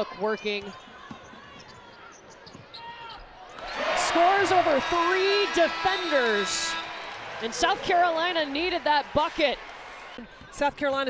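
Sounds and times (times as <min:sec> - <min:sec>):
quiet arena background noise: 0:00.0 - 0:11.0.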